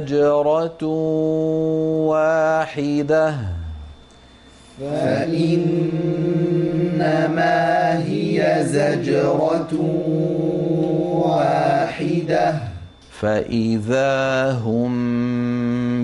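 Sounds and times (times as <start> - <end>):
man chanting melodically: 0.0 - 4.0, 4.8 - 16.0.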